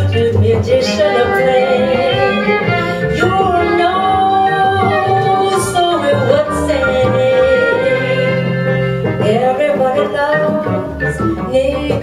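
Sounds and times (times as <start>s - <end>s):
piano: 0.0s - 12.0s
upright bass: 0.0s - 12.0s
violin melody: 0.0s - 12.0s
woman singing: 0.0s - 12.0s.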